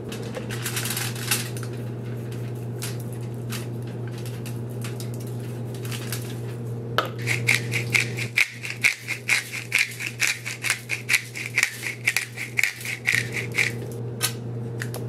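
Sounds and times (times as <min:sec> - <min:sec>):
steady low hum: 0:00.0 - 0:15.0
pepper grinder clicking: 0:07.2 - 0:13.9.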